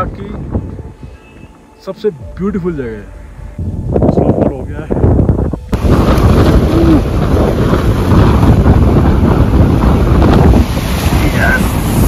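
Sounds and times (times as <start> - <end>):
wind buffeting microphone: 0.0 - 1.5, 2.2 - 12.0.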